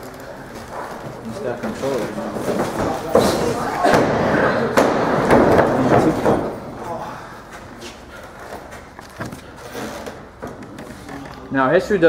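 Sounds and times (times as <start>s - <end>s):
indistinct voices: 10.6s - 12.0s.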